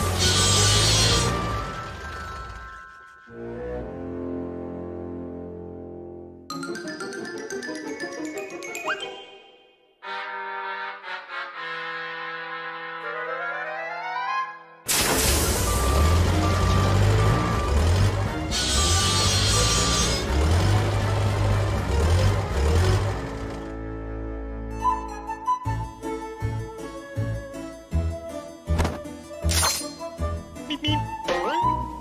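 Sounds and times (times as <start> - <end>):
orchestral cartoon music: 0.0 - 32.0
vehicle motor rumbling: 15.4 - 24.1.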